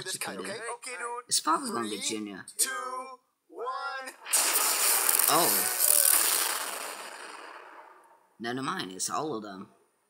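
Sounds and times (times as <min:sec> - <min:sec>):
lightning crash: 0:04.3 - 0:08.1.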